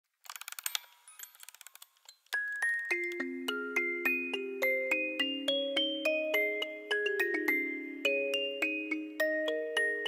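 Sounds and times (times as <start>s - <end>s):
wind-up key ratchet clicks: 0.2s - 2.4s.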